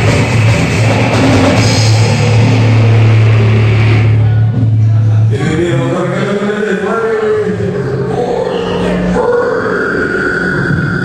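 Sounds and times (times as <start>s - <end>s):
steady high tone: 0.0s - 6.2s, 6.8s - 11.0s
droning wall of noise: 0.0s - 11.0s
growled vocal through distorted pa: 7.1s - 11.0s.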